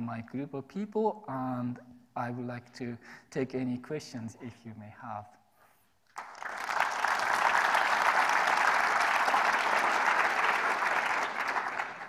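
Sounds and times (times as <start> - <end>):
audience applauding: 6.1 - 12.0.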